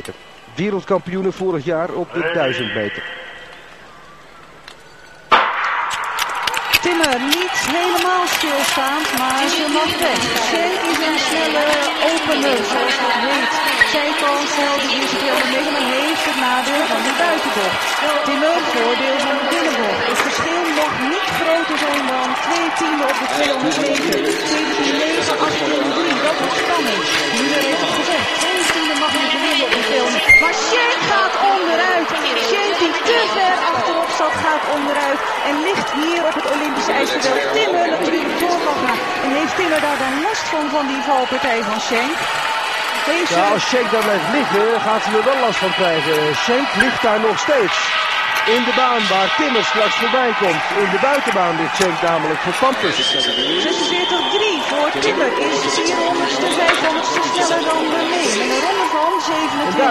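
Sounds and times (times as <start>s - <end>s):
person talking: 0.0s - 3.2s, 59.5s - 59.9s
crowd cheering: 0.0s - 59.9s
sharp knock: 5.3s - 6.7s.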